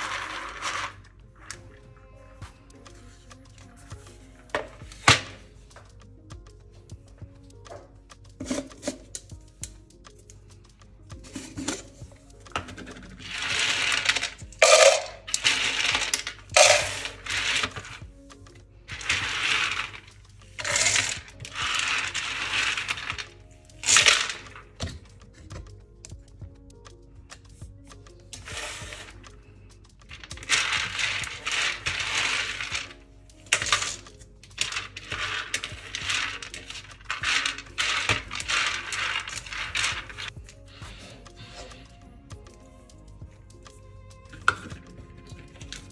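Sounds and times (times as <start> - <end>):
peanuts rattling in plastic jar: 0.0 - 1.0, 11.2 - 26.2, 28.0 - 40.4.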